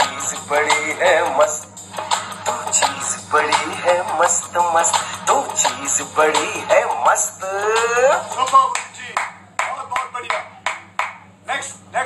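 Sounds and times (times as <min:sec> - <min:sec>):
hand claps: 0:08.4 - 0:11.3.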